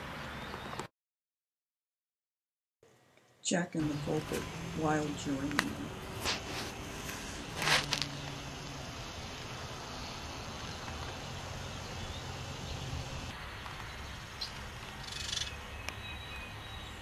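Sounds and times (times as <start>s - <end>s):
short rustle: 6.1s - 8.1s
faint high bird chirps: 13.8s - 17.0s.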